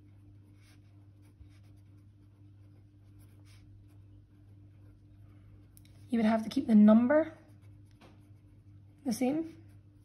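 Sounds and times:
low steady hum: 0:00.0 - 0:10.0
pen scratching on paper: 0:00.4 - 0:04.4.

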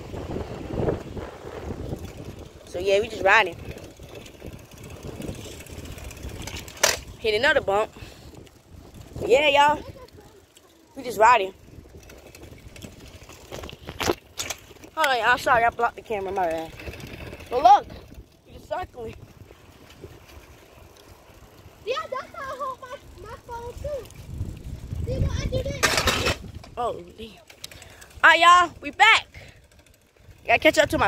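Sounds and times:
wind buffeting microphone: 0:00.0 - 0:31.0
light clicks and rattles: 0:01.9 - 0:07.5, 0:08.3 - 0:21.3, 0:22.2 - 0:28.2.

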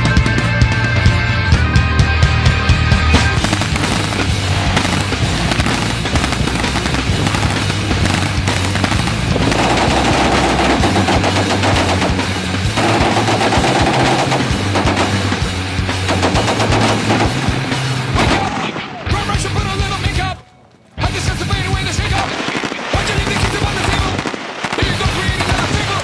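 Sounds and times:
loud music: 0:00.0 - 0:18.4
machine-gun fire: 0:03.4 - 0:17.6, 0:22.1 - 0:26.0.

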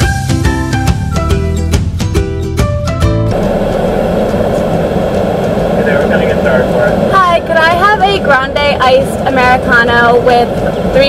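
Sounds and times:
background music: 0:00.0 - 0:05.2
car idling inside cabin: 0:03.3 - 0:11.0
voices: 0:03.4 - 0:11.0.

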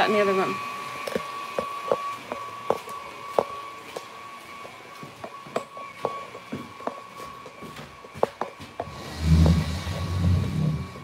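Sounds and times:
footsteps: 0:01.0 - 0:11.0.

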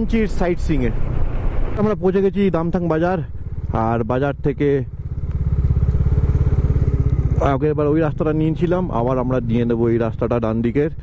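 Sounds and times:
motorcycle engine running: 0:02.4 - 0:11.0.

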